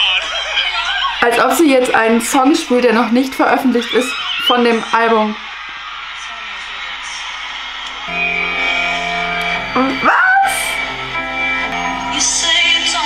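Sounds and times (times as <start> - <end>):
crowd noise: 0.0 - 13.0
sustained instrumental chords: 8.1 - 13.0.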